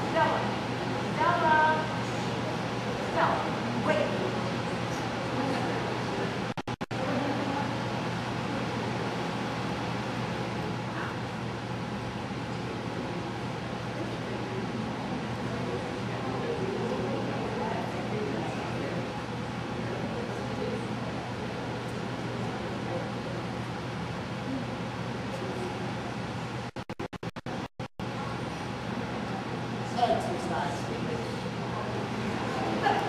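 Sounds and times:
faint background chatter: 0.0s - 26.7s, 28.0s - 33.0s.

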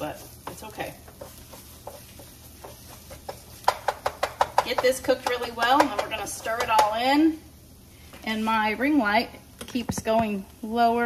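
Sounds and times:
wooden spatula stirring rice in pan: 0.0s - 7.0s
spatula knocking against pan: 0.4s - 7.0s.

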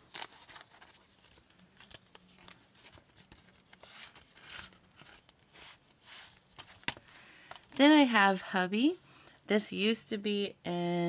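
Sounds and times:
plastic envelopes rustling: 0.0s - 9.0s.

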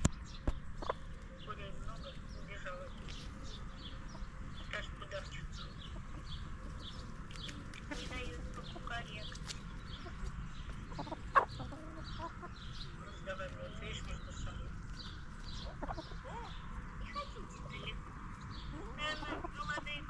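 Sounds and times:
hens clucking: 0.0s - 20.0s.

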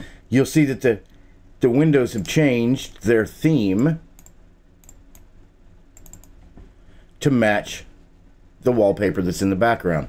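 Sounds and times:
low steady hum: 0.0s - 10.0s
computer input clicks: 4.2s - 5.3s, 6.0s - 6.4s.

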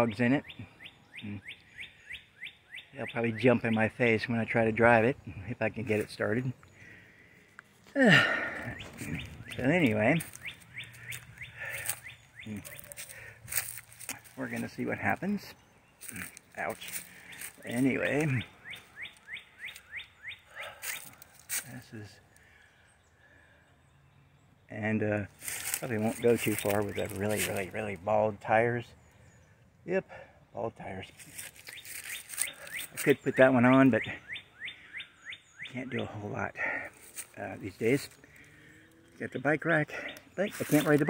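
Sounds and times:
bird chirping: 0.0s - 41.0s
footsteps in dry leaves: 8.8s - 21.7s, 25.3s - 27.9s, 31.1s - 33.2s, 37.0s - 37.4s, 40.4s - 41.0s.

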